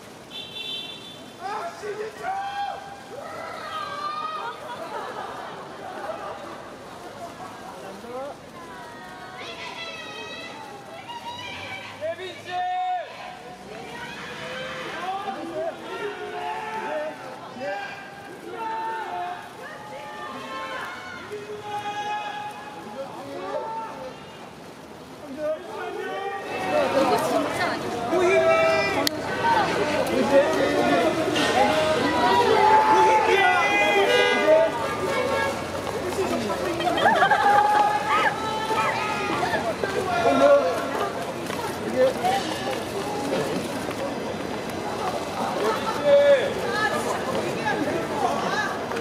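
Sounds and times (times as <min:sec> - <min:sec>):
outdoor street noise: 0:00.0 - 0:49.0
people talking and calling out: 0:00.0 - 0:49.0.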